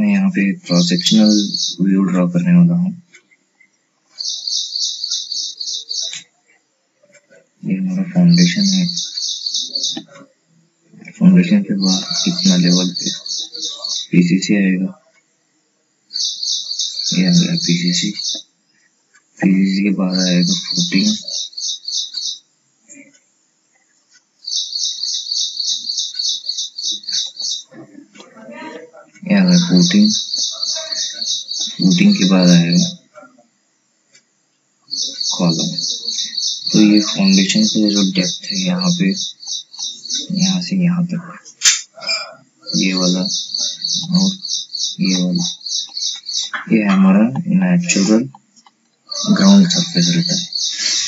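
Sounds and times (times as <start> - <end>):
small bird chirping: 0.7 - 2.6, 3.2 - 10.4, 11.0 - 14.6, 16.1 - 23.2, 23.9 - 27.8, 29.2 - 33.1, 34.8 - 41.0, 42.0 - 51.0.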